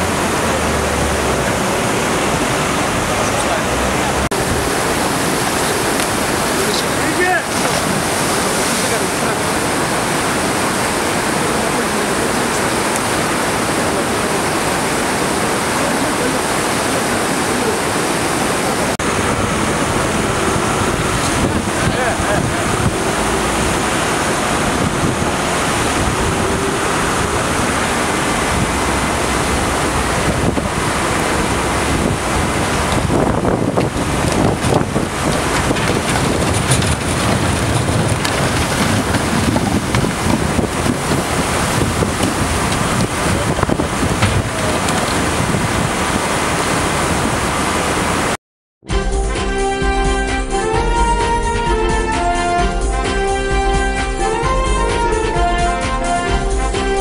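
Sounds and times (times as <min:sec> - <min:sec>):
river rushing: 0:00.0 - 0:48.4
wind buffeting microphone: 0:00.0 - 0:48.4
low rumble: 0:19.0 - 0:46.0
truck dumping rocks: 0:19.1 - 0:47.1.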